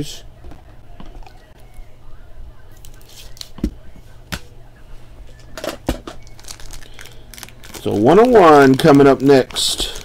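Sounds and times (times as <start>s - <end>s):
plastic rustling: 5.6s - 10.0s.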